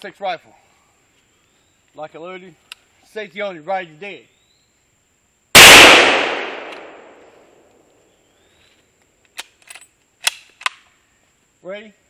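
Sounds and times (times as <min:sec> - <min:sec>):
rifle action clicking: 0:05.6 - 0:07.1
rifle shot: 0:05.6 - 0:07.6.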